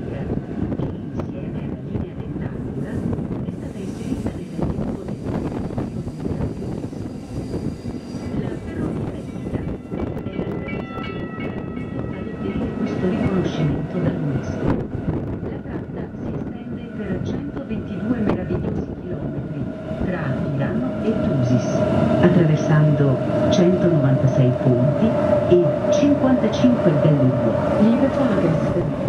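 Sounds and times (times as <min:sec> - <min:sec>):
train wheels rumbling on rails: 0:00.0 - 0:29.0.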